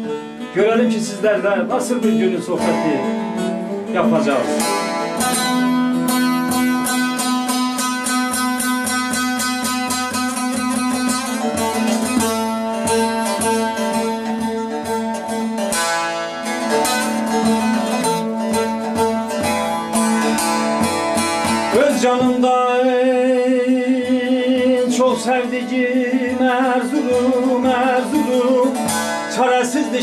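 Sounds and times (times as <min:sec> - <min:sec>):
plucked long-necked lutes: 0:00.0 - 0:30.0.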